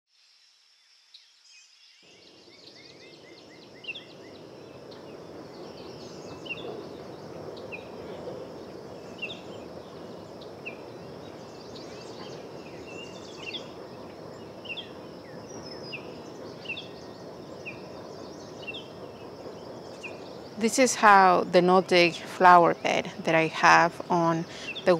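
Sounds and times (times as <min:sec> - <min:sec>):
high insect hum: 0:00.2 - 0:24.9
distant background noise: 0:02.2 - 0:24.9.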